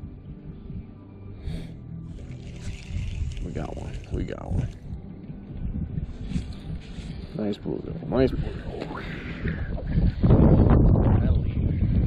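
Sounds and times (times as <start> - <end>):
wind buffeting microphone: 2.1 - 12.0.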